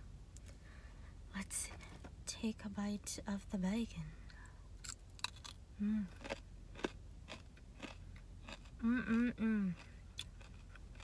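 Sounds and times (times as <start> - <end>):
crispy bacon chewing: 4.8 - 11.0
person humming: 5.8 - 6.2, 8.8 - 9.8.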